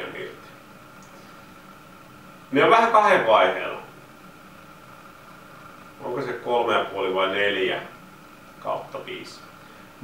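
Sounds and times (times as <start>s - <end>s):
faint steady hum and hiss: 0.0s - 10.0s.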